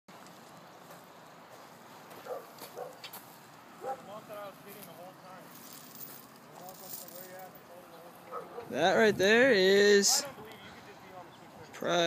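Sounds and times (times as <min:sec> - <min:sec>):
distant people talking: 0:06.4 - 0:12.0.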